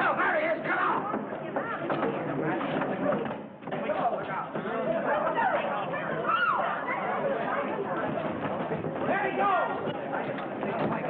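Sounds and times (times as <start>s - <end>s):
voices shouting and calling: 4.1s - 8.1s.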